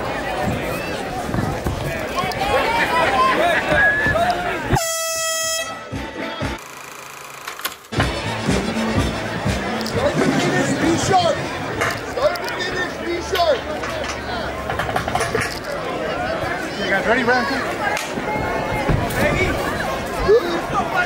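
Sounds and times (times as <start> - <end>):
crowd chatter: 0.0 - 21.0
horn blast: 4.7 - 6.6.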